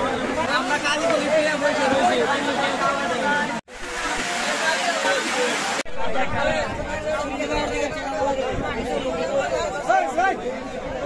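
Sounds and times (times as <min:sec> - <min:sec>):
men talking and chattering: 0:00.0 - 0:11.0.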